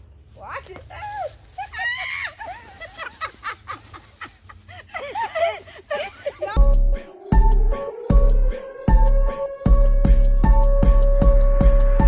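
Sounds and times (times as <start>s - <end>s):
women laughing and chattering: 0.9s - 6.8s
electronic music with heavy bass: 6.6s - 12.0s.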